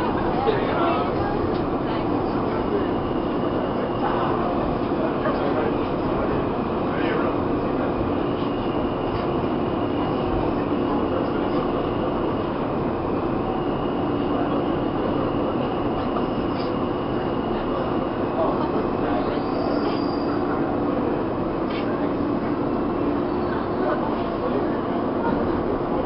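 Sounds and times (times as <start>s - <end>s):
subway car rumble: 0.0s - 26.0s.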